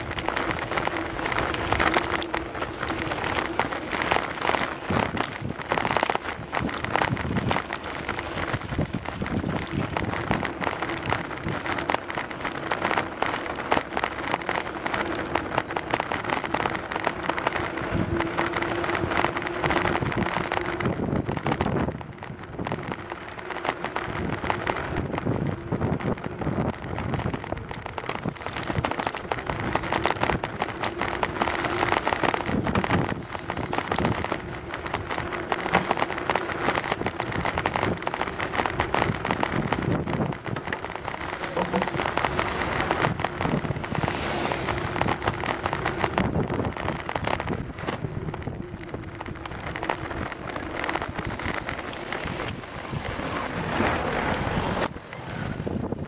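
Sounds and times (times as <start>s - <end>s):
bicycle rattling over wooden planks: 0.0s - 56.0s
wind on microphone: 0.0s - 56.0s.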